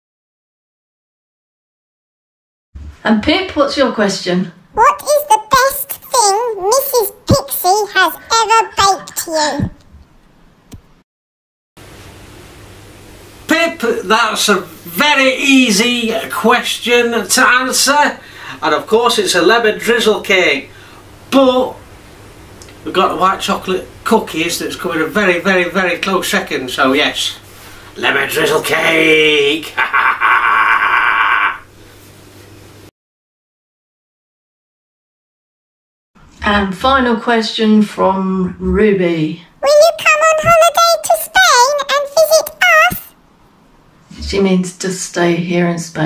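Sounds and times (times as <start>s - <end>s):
microphone hiss: 11.8s - 32.9s
man laughing raspily: 29.6s - 31.7s.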